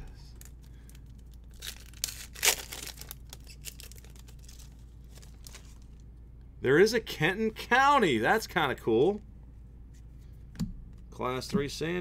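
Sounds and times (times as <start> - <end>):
card pack wrapper tearing: 0.4 - 5.9.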